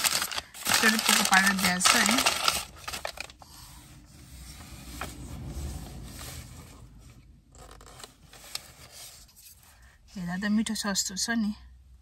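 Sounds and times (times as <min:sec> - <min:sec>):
wooden fork scraping paper tub: 0:00.0 - 0:06.5.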